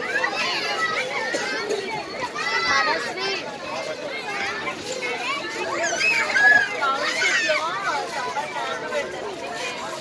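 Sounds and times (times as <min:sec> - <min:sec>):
children chattering and calling out: 0:00.0 - 0:10.0.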